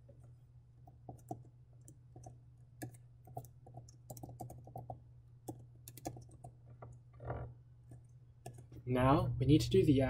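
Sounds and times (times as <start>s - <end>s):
computer keyboard typing: 0.9s - 6.6s, 7.9s - 8.7s.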